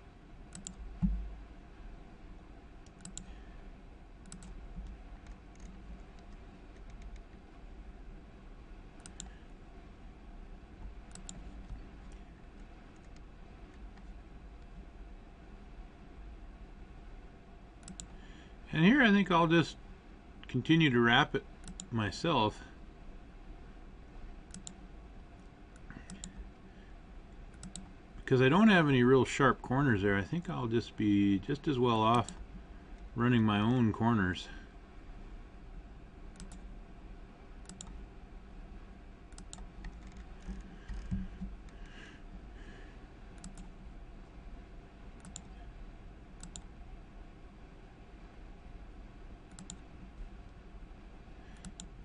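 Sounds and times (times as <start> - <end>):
low steady hum: 0.0 - 52.0
computer mouse clicking: 0.5 - 1.2, 2.8 - 3.3, 4.2 - 7.4, 9.0 - 9.4, 11.1 - 14.8, 17.8 - 18.2, 21.6 - 21.9, 24.5 - 24.8, 25.7 - 26.5, 27.5 - 27.9, 36.3 - 36.6, 37.6 - 38.0, 39.3 - 41.8, 43.4 - 43.8, 45.2 - 45.6, 46.4 - 46.7, 49.5 - 49.9, 51.6 - 52.0.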